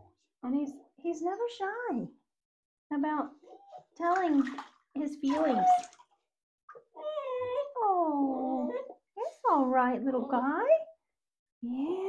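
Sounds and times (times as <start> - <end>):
puppy crying and whining: 6.8 - 9.1
puppy yelp: 7.0 - 7.8.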